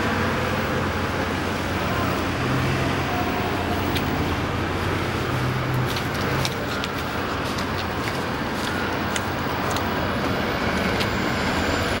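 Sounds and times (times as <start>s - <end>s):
bus engine rumble: 0.0s - 12.0s
street traffic: 0.0s - 12.0s.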